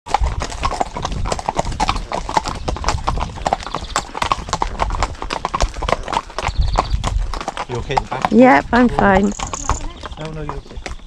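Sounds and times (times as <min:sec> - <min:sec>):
horse hooves clip-clopping on tarmac: 0:00.1 - 0:11.0.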